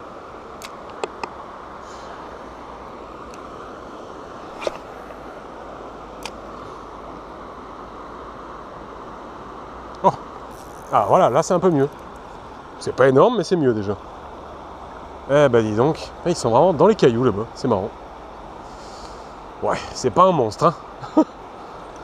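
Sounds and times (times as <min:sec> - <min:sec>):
breeze: 0:00.0 - 0:16.3
river water flowing: 0:00.0 - 0:22.0.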